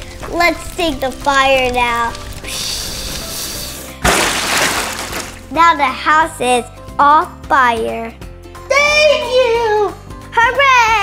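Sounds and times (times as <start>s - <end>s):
background music: 0.0s - 11.0s
water spraying hiss: 2.2s - 5.5s
loud cartoon splash: 4.0s - 5.5s.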